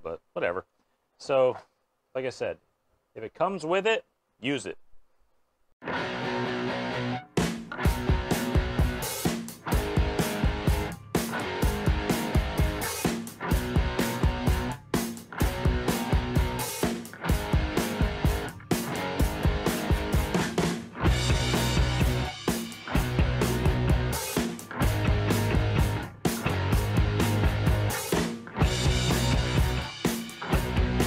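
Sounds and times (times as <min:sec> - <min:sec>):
rock music with guitar: 0:05.8 - 0:31.0
steady drum beat: 0:07.4 - 0:31.0.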